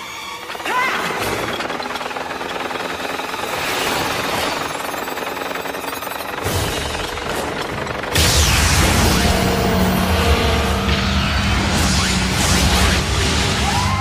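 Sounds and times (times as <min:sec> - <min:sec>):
dramatic orchestral music: 0:08.7 - 0:14.0.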